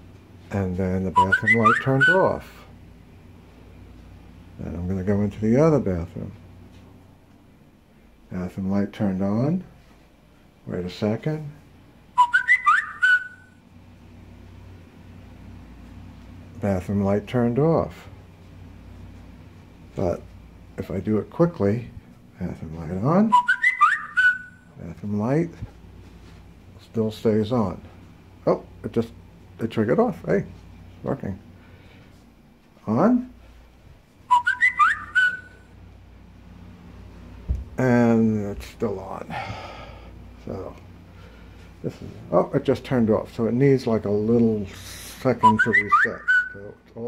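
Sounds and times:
high whistle-like note: 12.2s - 13.4s, 23.3s - 24.7s, 34.3s - 35.6s, 45.4s - 46.7s.

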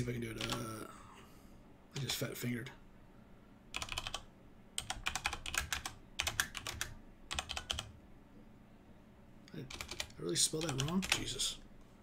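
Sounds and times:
typing on computer keyboard: 0.0s - 0.6s, 3.8s - 7.9s, 9.6s - 11.4s.

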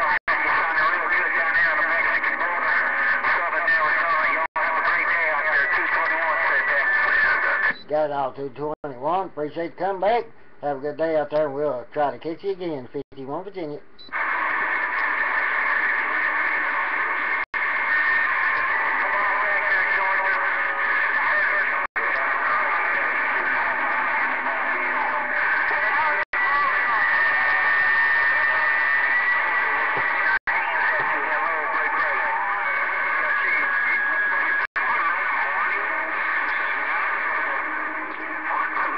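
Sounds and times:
radio static hiss: 0.0s - 8.2s, 14.0s - 38.9s
faint garbled radio voices: 0.0s - 38.9s.

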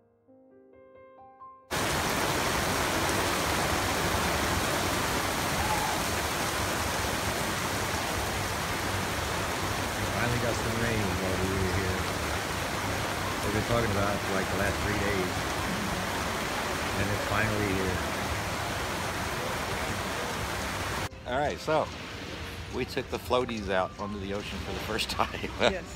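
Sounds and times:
steady rain falling: 1.7s - 25.9s
voices talking: 7.7s - 25.9s.

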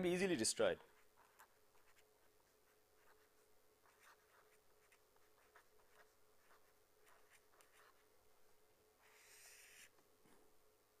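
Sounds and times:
pen scratching on paper: 1.0s - 8.0s, 9.0s - 9.9s.

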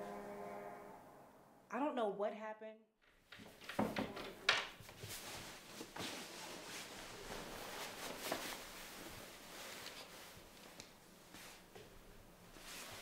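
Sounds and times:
rustling and handling noise: 3.2s - 13.0s.

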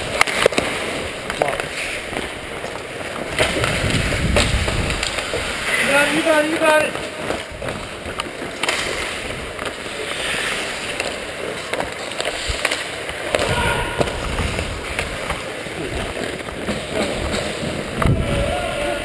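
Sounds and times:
ice skate blades scraping ice: 0.0s - 19.0s
wind rushing over microphone: 3.4s - 5.7s, 13.4s - 16.1s, 17.2s - 19.0s.

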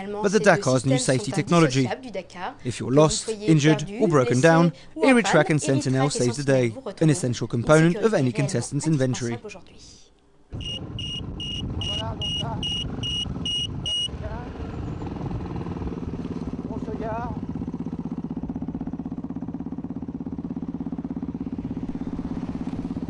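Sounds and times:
high electronic beeps: 10.6s - 14.1s
rally car engine running: 10.6s - 23.0s.

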